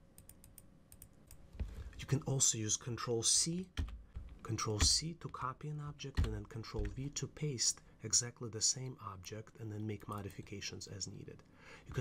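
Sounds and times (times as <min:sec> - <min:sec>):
keyboard and mouse clicks: 0:00.2 - 0:01.8, 0:03.8 - 0:05.4, 0:06.1 - 0:07.1.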